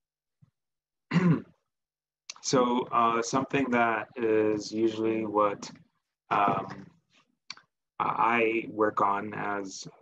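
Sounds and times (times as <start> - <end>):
man clearing throat: 1.1 - 1.6.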